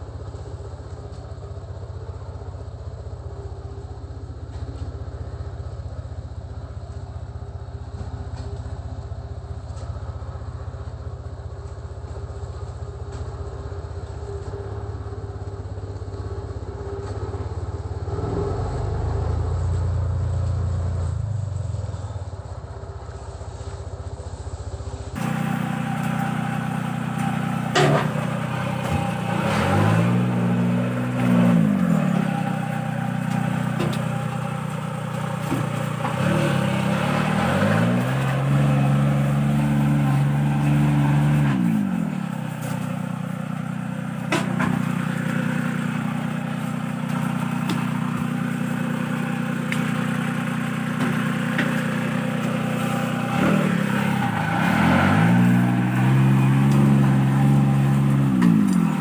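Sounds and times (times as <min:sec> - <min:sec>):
small dumper engine running: 0:00.0 - 0:59.0.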